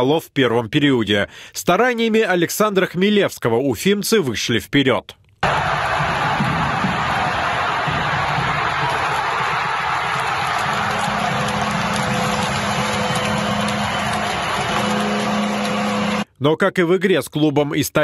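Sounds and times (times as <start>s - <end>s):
arena crowd cheering: 5.4s - 16.3s
music: 5.4s - 16.3s.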